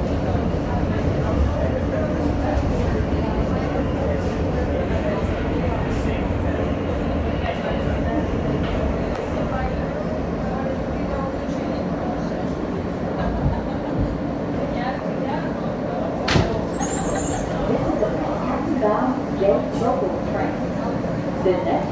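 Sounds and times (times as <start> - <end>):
subway train wheels rumbling: 0.0 - 21.9.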